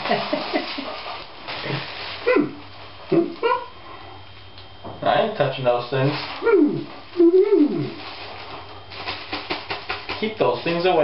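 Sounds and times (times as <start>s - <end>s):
plastic bag crinkling: 0.0s - 2.8s, 6.0s - 11.0s.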